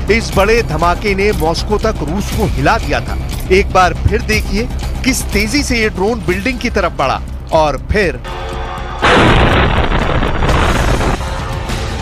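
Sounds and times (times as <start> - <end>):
background music: 0.0 - 12.0
loud explosion blast: 9.0 - 11.3.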